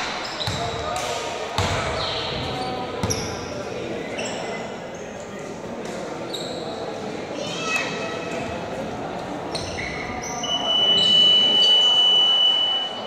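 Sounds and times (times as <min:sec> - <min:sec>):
sneaker squeaks: 0:00.0 - 0:01.0, 0:01.6 - 0:05.4, 0:06.1 - 0:06.9, 0:09.5 - 0:13.0
basketball bouncing on court: 0:00.0 - 0:03.5.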